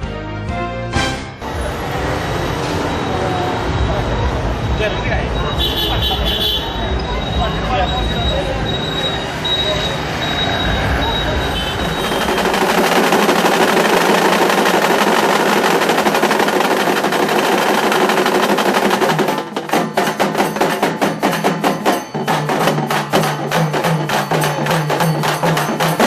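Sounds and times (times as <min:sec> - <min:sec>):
large drums beaten with sticks: 0:03.6 - 0:26.0.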